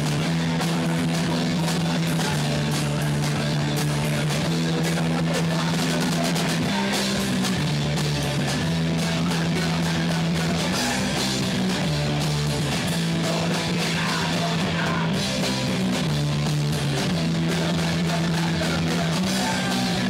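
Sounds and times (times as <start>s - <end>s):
driving drum kit: 0.0s - 20.0s
electric guitar chords: 0.0s - 20.0s.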